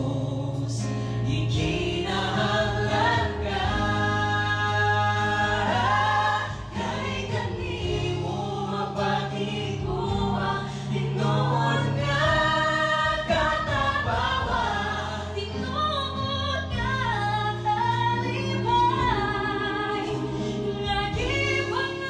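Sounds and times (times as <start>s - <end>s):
group singing in harmony: 0.0s - 22.0s.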